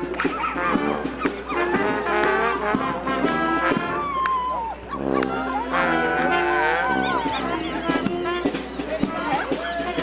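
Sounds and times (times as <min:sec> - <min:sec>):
chatter of children and adults: 0:04.6 - 0:10.0
high squeaky chirps: 0:06.7 - 0:10.0.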